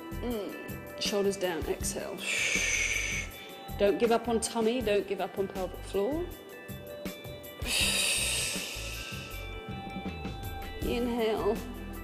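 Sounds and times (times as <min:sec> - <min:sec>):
background music with steady beat: 0:00.0 - 0:12.0
person exhaling through mouth: 0:02.2 - 0:03.4, 0:07.6 - 0:09.5.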